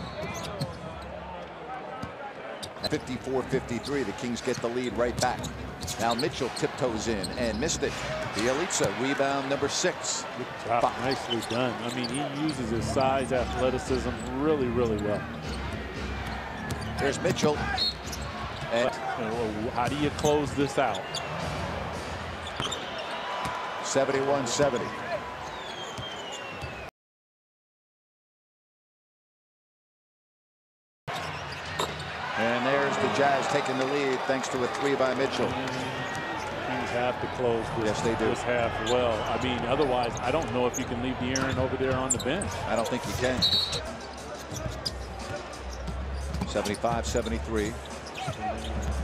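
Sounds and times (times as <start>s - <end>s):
arena crowd noise: 0.0s - 26.9s, 31.1s - 49.0s.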